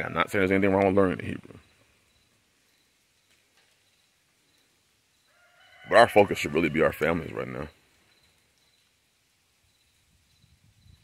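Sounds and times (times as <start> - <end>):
man speaking: 0.0 - 1.6, 5.9 - 7.8
faint rooster crowing: 5.2 - 7.1.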